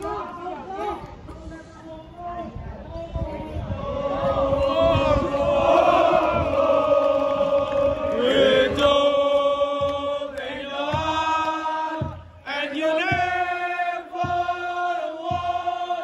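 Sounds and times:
crowd singing a chant: 3.0s - 16.0s.

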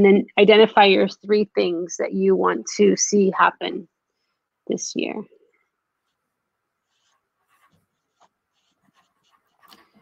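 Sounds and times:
marker scratching on paper: 6.8s - 10.0s.

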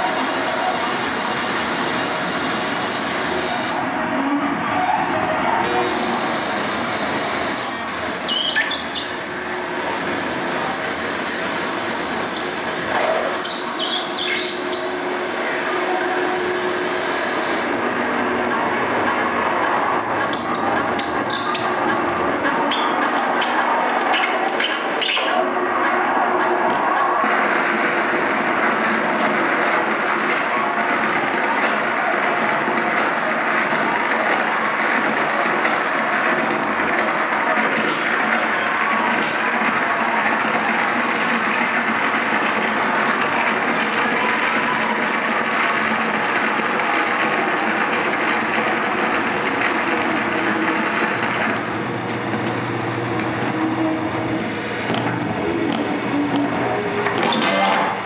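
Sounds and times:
wall of distorted noise: 0.0s - 58.0s.

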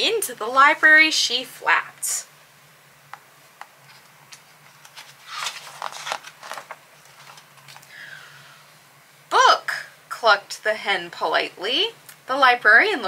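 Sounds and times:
book pages rustling: 3.6s - 7.9s.

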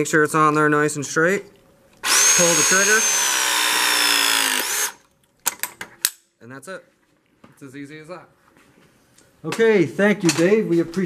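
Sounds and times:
press tool motor whine: 2.0s - 5.0s.

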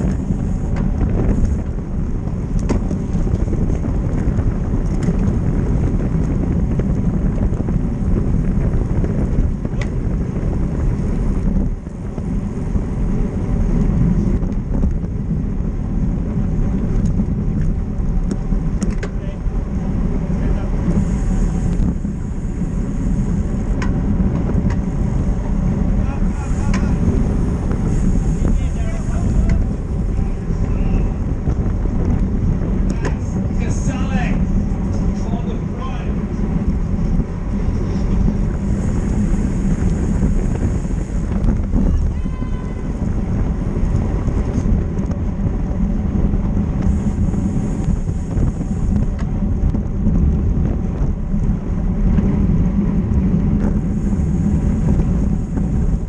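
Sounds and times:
bicycle tyre and road noise: 0.0s - 56.0s
wind rushing over microphone: 0.0s - 56.0s
voices: 26.0s - 27.6s, 28.2s - 31.3s, 32.8s - 36.3s, 41.8s - 43.0s.

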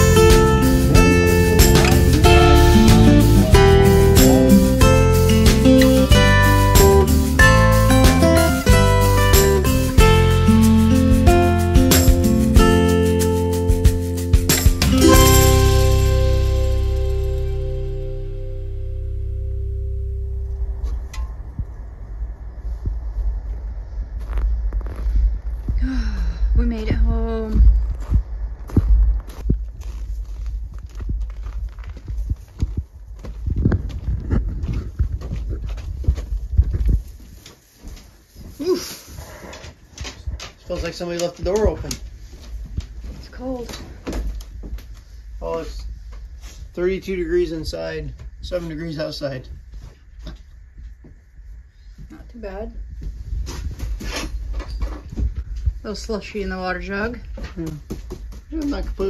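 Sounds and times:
background music: 0.0s - 20.9s
wind rumble on microphone: 20.2s - 37.5s, 43.9s - 57.4s
footsteps in snow: 27.7s - 43.6s.

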